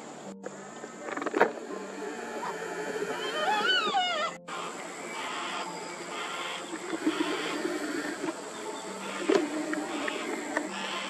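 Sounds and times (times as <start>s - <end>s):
cockatoo wavering call: 2.6s - 11.0s.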